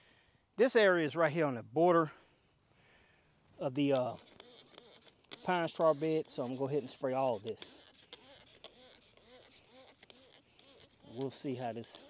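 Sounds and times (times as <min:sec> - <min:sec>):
spray bottle squirts: 0:03.9 - 0:12.0.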